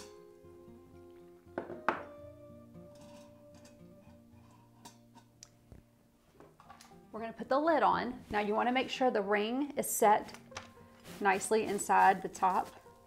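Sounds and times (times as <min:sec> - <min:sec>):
soft background music: 0:00.0 - 0:13.0
cup set down on countertop: 0:01.6 - 0:02.2.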